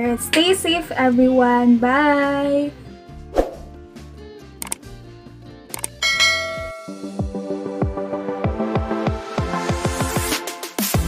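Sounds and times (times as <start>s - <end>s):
background music: 0.0s - 11.0s
mouse clicks: 4.6s - 4.8s, 5.7s - 6.0s.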